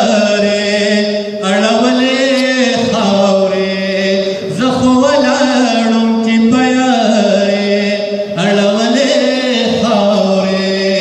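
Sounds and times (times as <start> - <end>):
man chanting melodically: 0.0 - 11.0.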